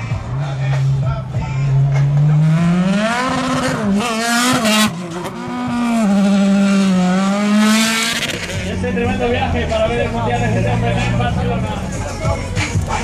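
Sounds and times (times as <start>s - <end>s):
race car engine revving: 0.0s - 13.0s.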